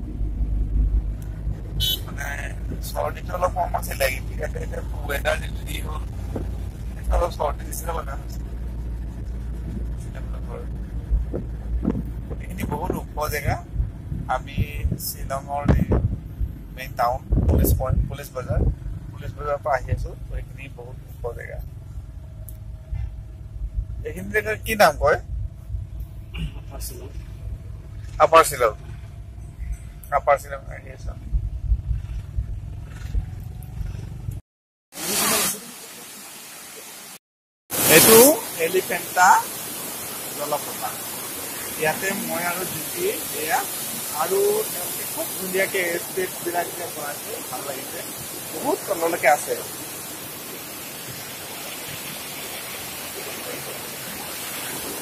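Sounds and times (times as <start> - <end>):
car engine and tyres rumbling: 0.0 - 34.4
man speaking: 2.0 - 6.1, 7.0 - 8.3, 14.3 - 15.9, 19.2 - 21.6, 24.1 - 25.2, 30.1 - 31.2, 37.8 - 39.5, 41.8 - 49.7.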